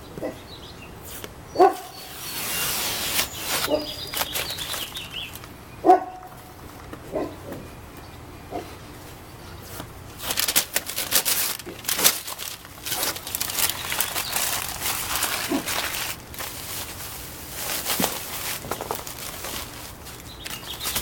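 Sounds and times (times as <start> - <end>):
masking tape being peeled: 1.1 - 5.5, 10.2 - 17.0
dog barking: 1.6 - 2.0, 3.7 - 4.0, 5.8 - 6.3, 7.1 - 7.4.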